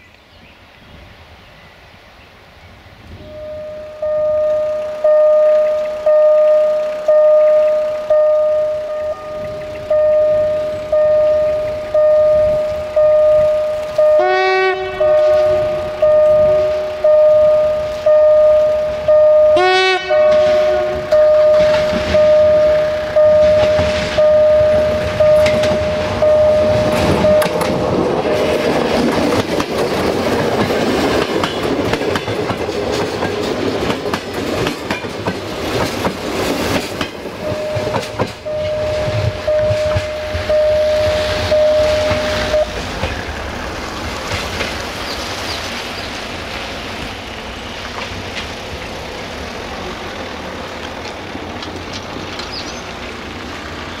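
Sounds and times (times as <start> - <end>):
train engine and wheels rumbling: 0.0 - 54.0
train horn blasts: 3.1 - 27.9, 37.4 - 42.8
level crossing warning bell: 3.2 - 29.0, 36.5 - 43.1.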